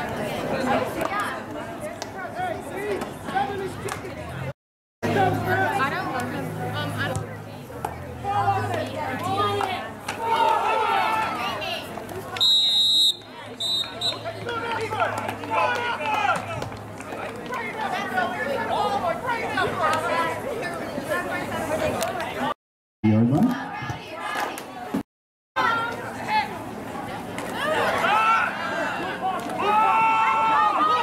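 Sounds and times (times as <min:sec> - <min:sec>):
crowd chatter: 0:00.0 - 0:25.0, 0:25.6 - 0:31.0
referee's whistle blasts: 0:12.4 - 0:14.2.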